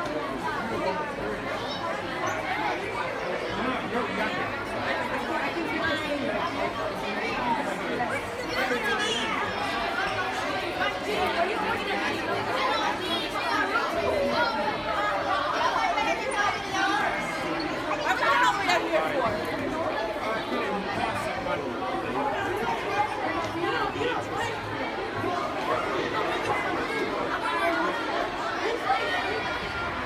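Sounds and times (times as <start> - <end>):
children chattering: 0.0 - 30.0.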